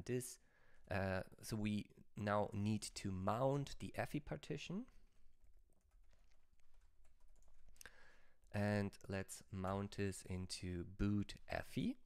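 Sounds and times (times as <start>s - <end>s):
typing on computer keyboard: 5.4s - 7.8s.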